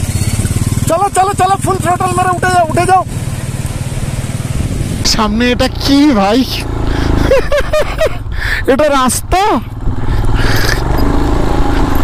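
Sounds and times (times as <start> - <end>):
motorcycle engine idling low: 0.0 - 8.7.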